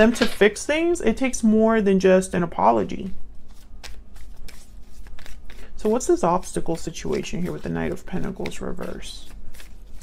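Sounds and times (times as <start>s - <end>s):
cards being shuffled: 3.4s - 10.0s.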